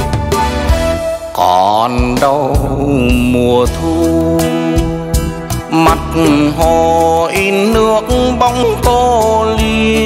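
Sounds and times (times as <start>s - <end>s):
bass guitar: 0.0s - 10.0s.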